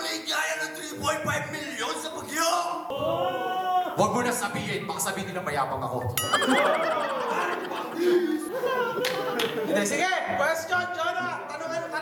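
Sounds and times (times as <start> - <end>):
laughter: 6.4 - 9.9.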